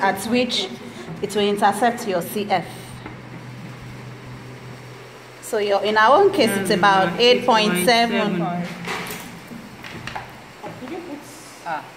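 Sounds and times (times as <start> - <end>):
low room hum: 0.0 - 11.9.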